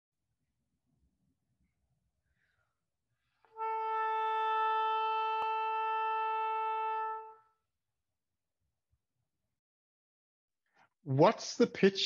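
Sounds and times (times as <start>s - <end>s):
oboe sustained note: 3.5s - 7.6s.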